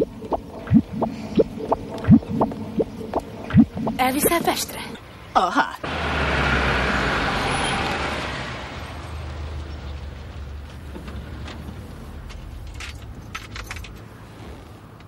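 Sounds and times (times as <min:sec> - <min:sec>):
low engine hum: 0:00.0 - 0:15.0
car driving by: 0:05.8 - 0:12.5.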